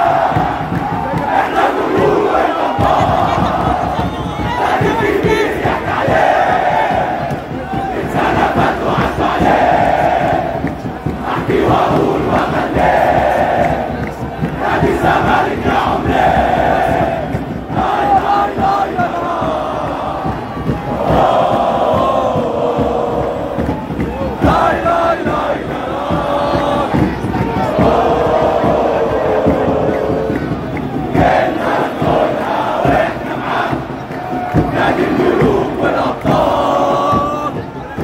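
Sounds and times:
crowd chanting in unison: 0.0 - 38.0
crowd noise: 0.0 - 38.0.

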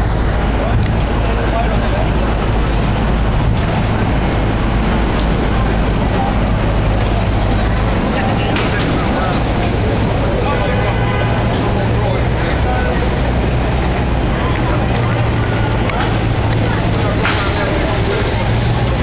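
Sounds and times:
low rumble and hum: 0.0 - 19.0
people talking: 0.0 - 19.0.

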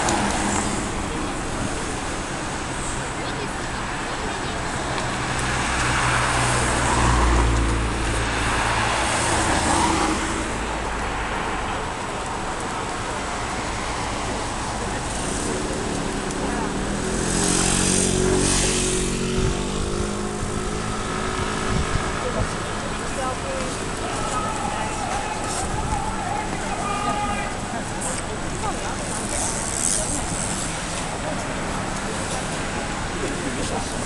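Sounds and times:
vehicles passing on street: 0.0 - 34.0.

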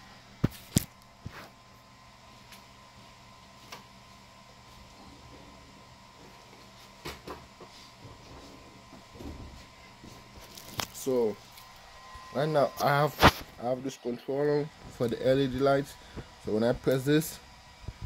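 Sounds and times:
thin steady hum: 0.0 - 18.0.

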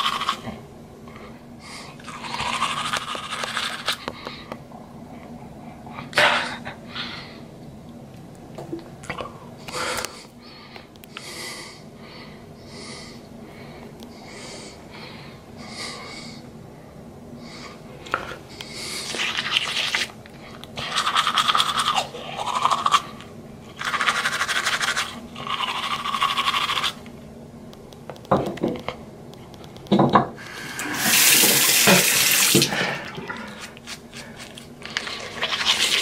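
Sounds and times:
toothbrush scrubbing teeth: 0.0 - 0.4, 2.0 - 4.0, 19.0 - 20.2, 20.8 - 27.0, 33.5 - 36.0.

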